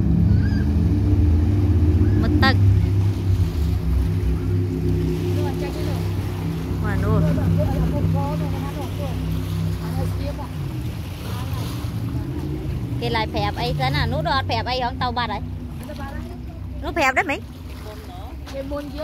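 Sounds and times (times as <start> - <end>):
boat engine drone: 0.0 - 19.0.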